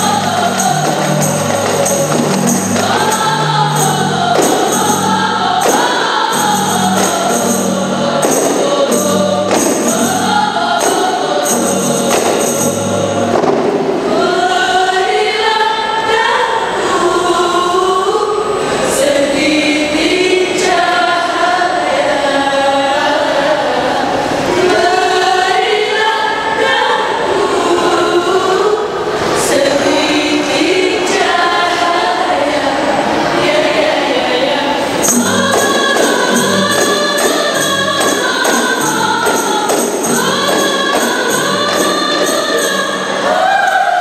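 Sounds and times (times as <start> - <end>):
frame drums beating: 0.0 - 14.3, 35.0 - 43.4
women's chorus singing: 0.0 - 44.0.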